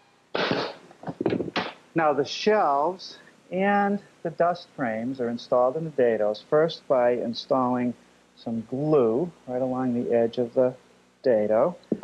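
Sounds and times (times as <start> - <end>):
short rush of noise: 0.4 - 0.8.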